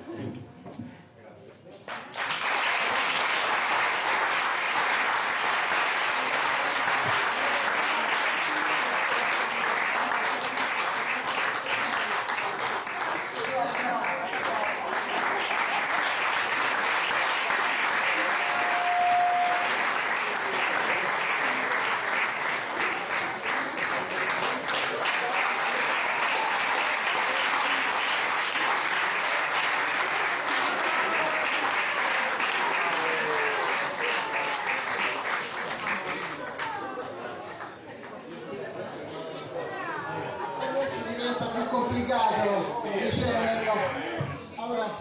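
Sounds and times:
audience applauding: 0:01.9 - 0:37.8.

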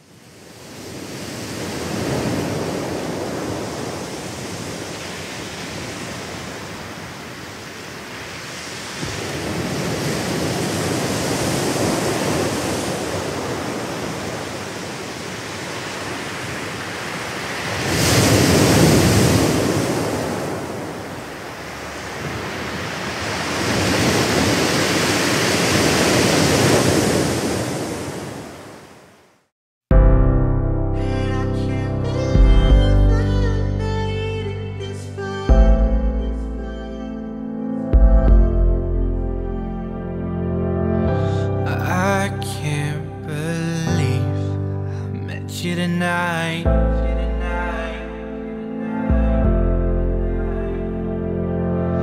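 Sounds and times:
waves breaking on shore: 0:00.0 - 0:29.5.

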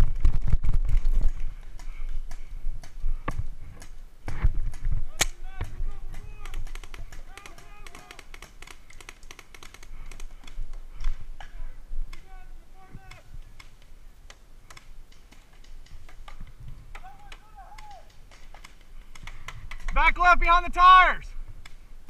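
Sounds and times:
distant players shouting: 0:05.3 - 0:08.5, 0:11.4 - 0:13.6, 0:16.9 - 0:18.2, 0:19.9 - 0:21.3
paintball markers popping: 0:05.6 - 0:11.2.

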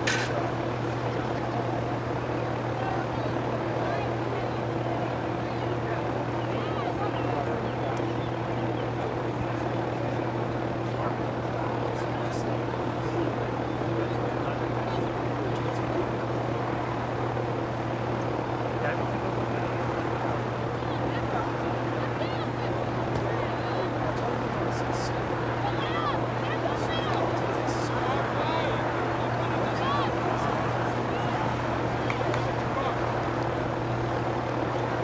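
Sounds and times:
distant voices and shouts: 0:00.0 - 0:35.0
low mechanical drone: 0:00.0 - 0:35.0.

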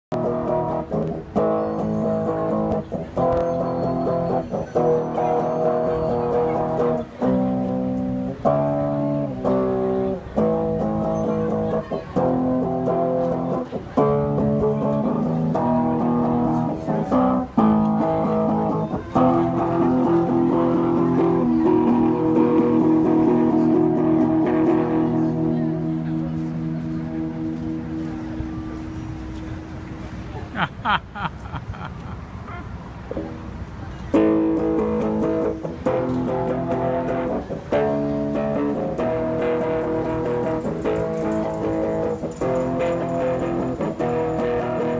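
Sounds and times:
electric guitar chords: 0:00.1 - 0:28.1, 0:34.1 - 0:44.9.

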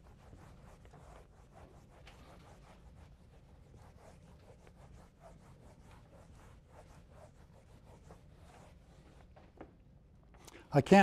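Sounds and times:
eraser rubbing whiteboard: 0:00.0 - 0:09.4.

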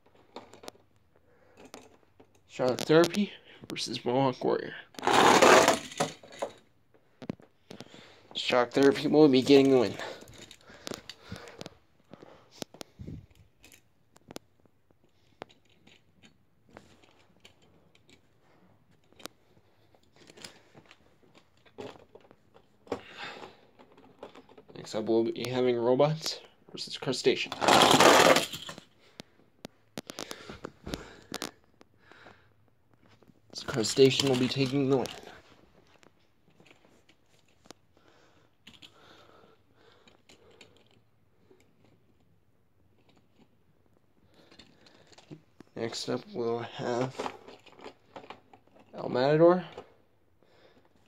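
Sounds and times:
toy trucks clicking and rattling: 0:05.0 - 0:06.7, 0:15.1 - 0:18.3, 0:27.6 - 0:29.0, 0:33.6 - 0:35.4, 0:38.6 - 0:43.6, 0:44.3 - 0:45.4, 0:46.9 - 0:49.0
small objects clicking and rustling: 0:08.9 - 0:24.9, 0:27.7 - 0:32.0, 0:32.9 - 0:38.0, 0:38.6 - 0:45.8, 0:46.8 - 0:49.9.

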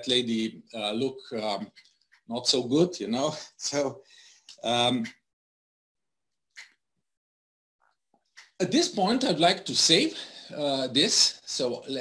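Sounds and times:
quiet breath: 0:03.4 - 0:04.6, 0:10.1 - 0:10.6
man saying um: 0:04.6 - 0:05.1.

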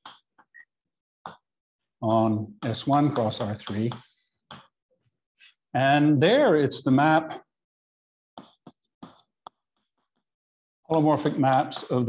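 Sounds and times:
chalk scraping on blackboard: 0:08.4 - 0:09.3.

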